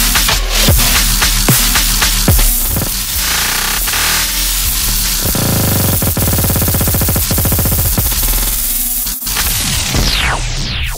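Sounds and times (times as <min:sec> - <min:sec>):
dubstep music with heavy bass: 0:00.0 - 0:10.9.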